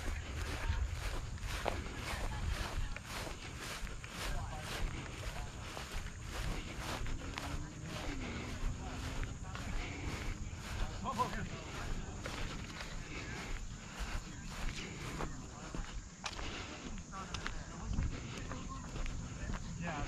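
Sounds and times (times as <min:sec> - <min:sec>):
faint voices: 0:00.0 - 0:20.0
footsteps on grass and asphalt: 0:00.0 - 0:20.0.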